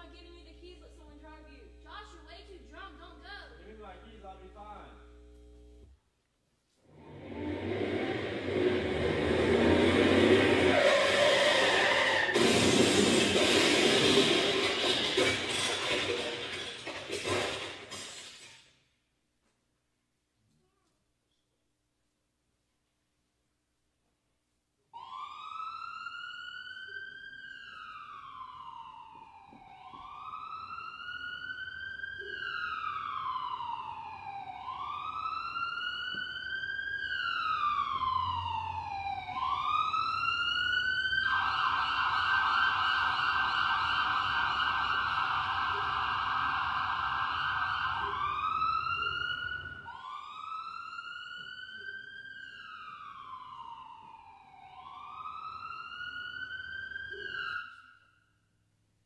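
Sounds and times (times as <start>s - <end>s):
low rumble: 7.0s - 10.8s
emergency vehicle siren wailing: 7.0s - 16.6s, 25.0s - 58.1s.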